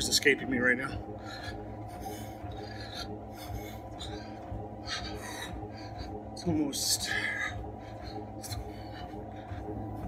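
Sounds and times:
rhythmic rasping swishes: 0.0 - 10.0
steady low hum: 0.0 - 10.0.

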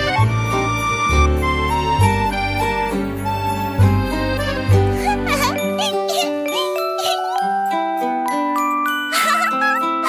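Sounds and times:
children's music with bell-like notes: 0.0 - 10.0.

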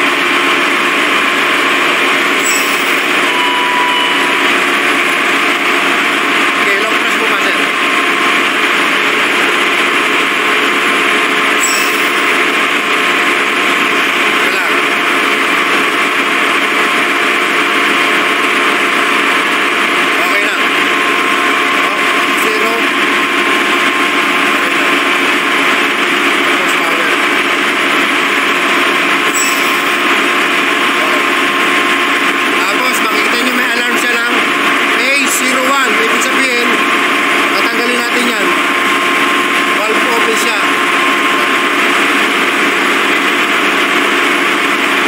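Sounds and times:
engine room machinery noise: 0.0 - 45.0.

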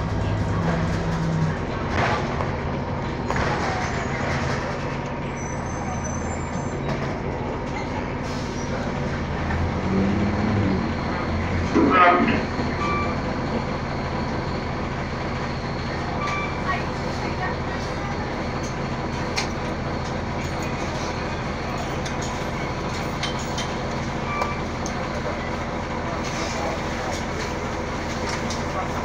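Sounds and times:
bus interior drone: 0.0 - 29.0.

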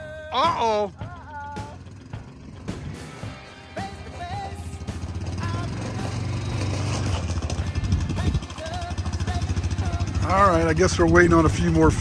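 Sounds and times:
small petrol engine idling: 0.0 - 12.0.

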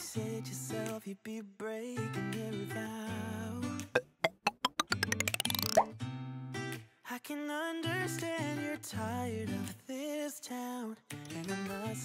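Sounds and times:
short pops speeding up: 4.0 - 5.9.

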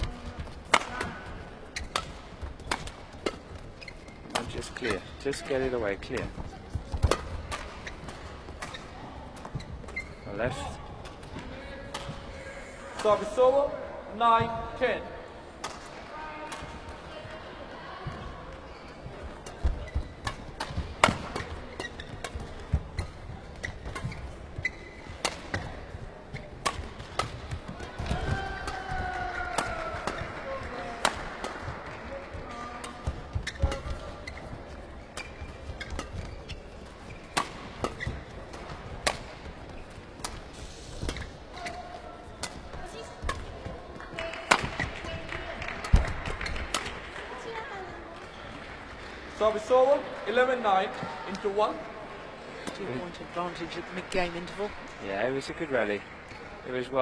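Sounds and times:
rackets hitting shuttlecock: 0.0 - 10.1, 19.4 - 34.4, 35.0 - 43.7, 44.3 - 47.0
crowd murmur in large hall: 0.0 - 57.0.

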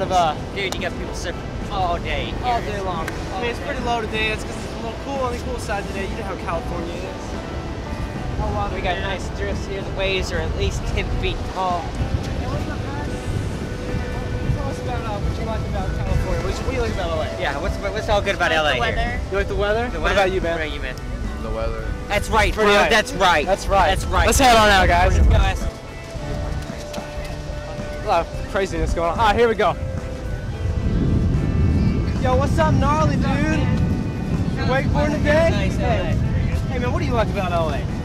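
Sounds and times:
background music with held notes: 0.0 - 38.0
beach surf: 0.0 - 38.0
faint voices talking: 0.0 - 38.0
wind rumbling on microphone: 0.0 - 38.0.

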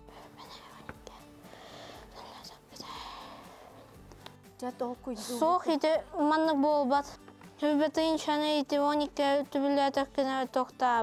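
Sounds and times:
faint whispering: 0.1 - 1.3, 2.1 - 3.8.

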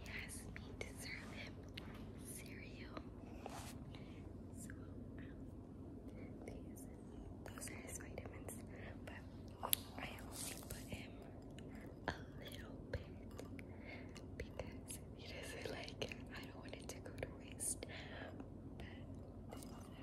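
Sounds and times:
woman whispering: 0.0 - 5.5, 6.1 - 13.3, 14.1 - 20.0.

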